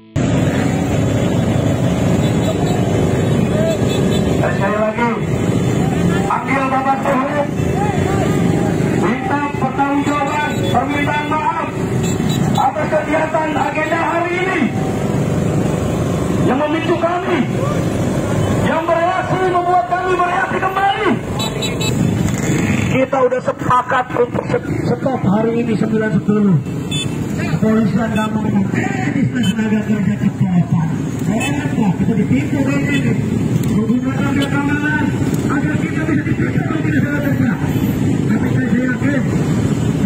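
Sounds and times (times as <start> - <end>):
motorcycle engines rumbling: 0.0 - 40.0
crowd voices: 0.5 - 15.4.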